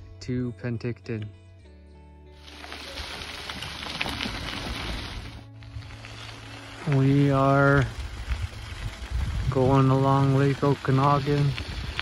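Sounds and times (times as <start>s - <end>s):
bicycle tyres on gravel: 2.4s - 12.0s
wind on microphone: 7.8s - 12.0s.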